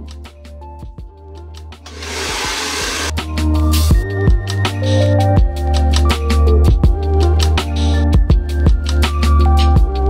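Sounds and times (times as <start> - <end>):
rushing hiss-like noise: 1.9 - 3.1.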